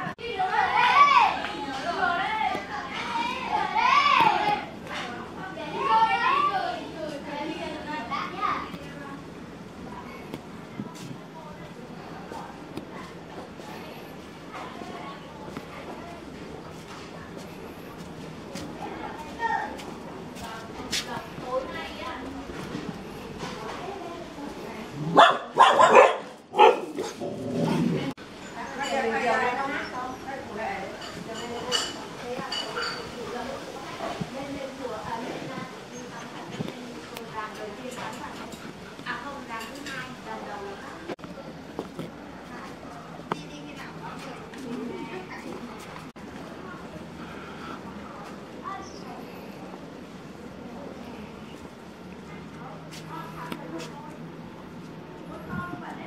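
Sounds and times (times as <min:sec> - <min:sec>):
children calling and shouting: 0:00.0 - 0:56.0
dog barking: 0:25.1 - 0:27.2.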